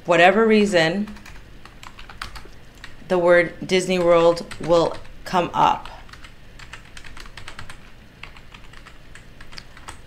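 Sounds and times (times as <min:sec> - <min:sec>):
typing on computer keyboard: 0:01.1 - 0:03.0, 0:04.0 - 0:05.1, 0:06.1 - 0:10.0.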